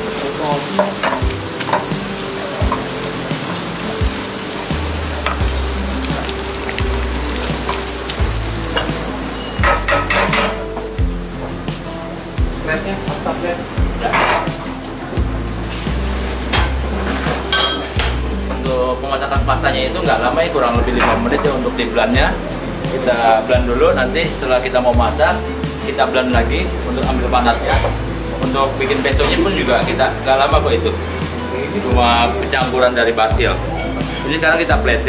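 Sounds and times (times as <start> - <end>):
food sizzling in a wok: 0.0 - 32.9, 33.6 - 34.6
background music with bass line: 0.0 - 35.0
utensil knocking on pan: 0.7 - 2.0, 9.6 - 10.9.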